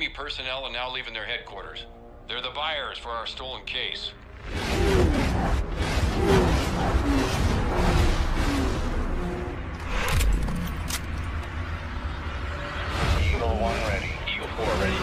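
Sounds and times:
dramatic film music: 0:00.0 - 0:15.0.

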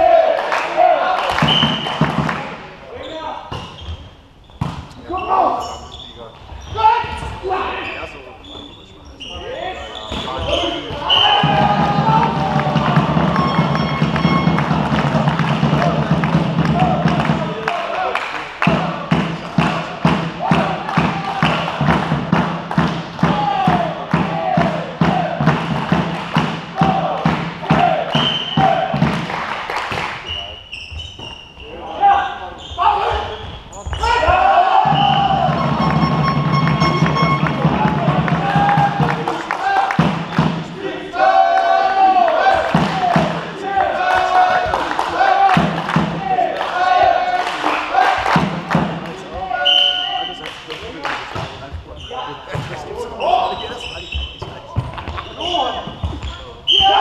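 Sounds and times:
volleyball hits: 0:01.2 - 0:02.7, 0:10.1 - 0:17.8, 0:18.6 - 0:30.5, 0:33.9 - 0:40.7, 0:42.3 - 0:49.2
players calling out: 0:05.0 - 0:29.2, 0:30.2 - 0:57.0.

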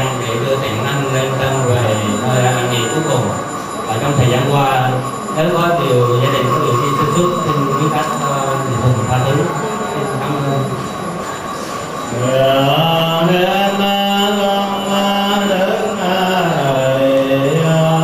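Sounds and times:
person chanting over a microphone: 0:12.0 - 0:18.0.

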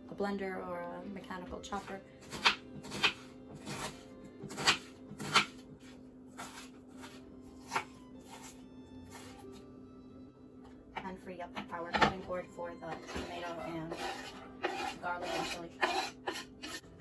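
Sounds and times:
knife chopping on wooden board: 0:02.2 - 0:07.1, 0:13.9 - 0:16.8.

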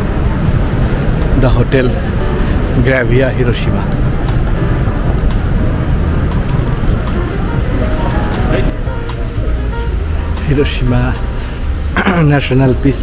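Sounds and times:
music: 0:00.0 - 0:13.0
road traffic rumble: 0:00.0 - 0:13.0
faint voices: 0:06.6 - 0:11.4.

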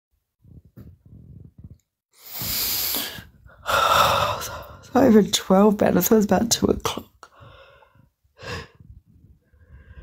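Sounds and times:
woman breathing close to microphone: 0:00.6 - 0:04.9, 0:07.2 - 0:10.0.

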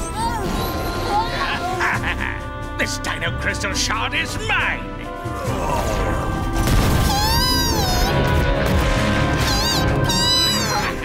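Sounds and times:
background music: 0:00.0 - 0:11.0
cartoon creature mewing cries: 0:07.0 - 0:08.2, 0:09.4 - 0:11.0.

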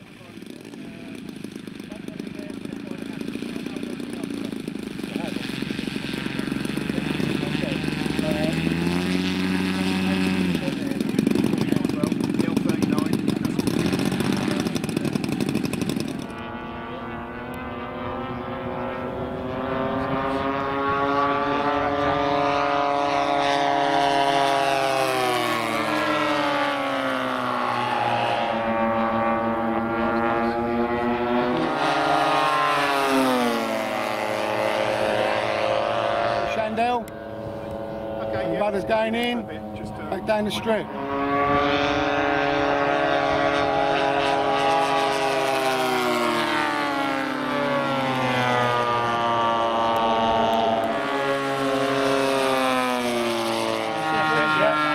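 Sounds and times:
model plane engines running: 0:00.0 - 0:54.9
model planes passing overhead: 0:00.0 - 0:54.9.

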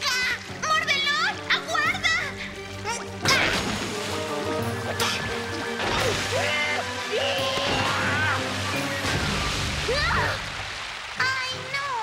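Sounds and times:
background music: 0:00.0 - 0:12.0
cartoon water gushing and splashing: 0:03.2 - 0:11.4.

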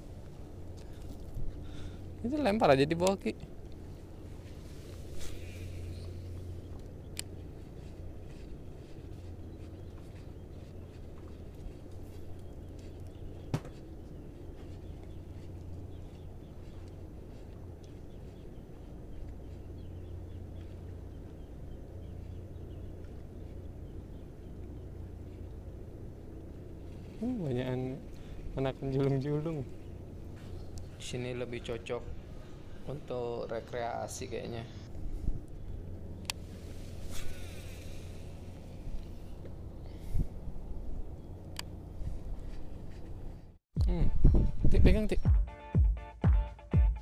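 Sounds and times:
wind rumble on microphone: 0:00.0 - 0:02.2, 0:34.9 - 0:45.3
faint bird chirps: 0:04.0 - 0:25.6.

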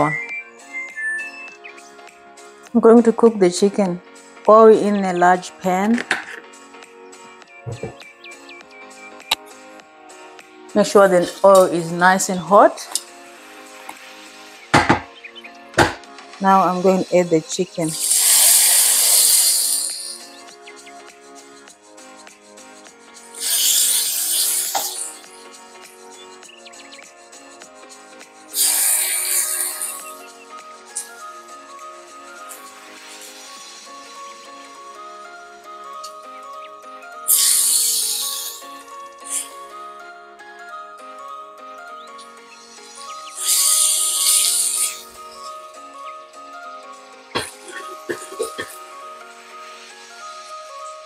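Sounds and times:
background music: 0:00.0 - 0:51.0
sharp knock: 0:14.7 - 0:15.1, 0:15.8 - 0:16.0
hot oil sizzling in a frying pan: 0:18.0 - 0:20.1, 0:23.4 - 0:25.1
chicken sizzling in hot oil: 0:18.0 - 0:20.2, 0:23.4 - 0:25.2, 0:28.6 - 0:30.1, 0:32.9 - 0:34.1, 0:37.3 - 0:38.6, 0:42.7 - 0:45.0.

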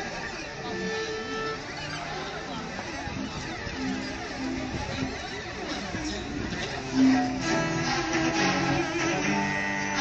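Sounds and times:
cellos bowing: 0:00.0 - 0:10.0.

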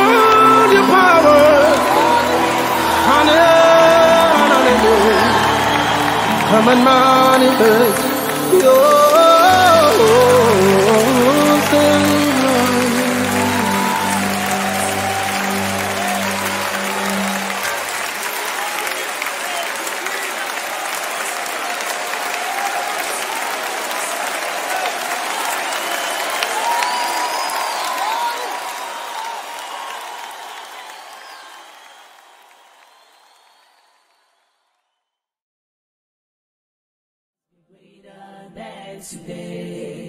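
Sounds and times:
band's sustained chord: 0:00.0 - 0:18.1
audience applause: 0:00.0 - 0:34.6.

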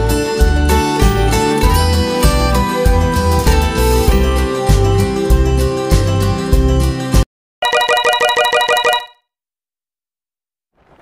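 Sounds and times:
guitar background music: 0:00.0 - 0:07.2.

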